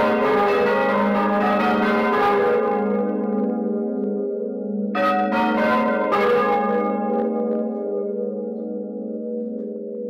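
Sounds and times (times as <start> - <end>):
church bells clanging: 0.0 - 10.0.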